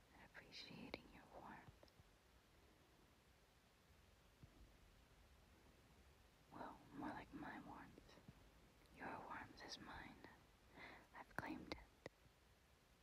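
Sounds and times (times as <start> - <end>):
woman whispering: 0.0 - 1.8, 6.5 - 8.2, 8.9 - 12.1.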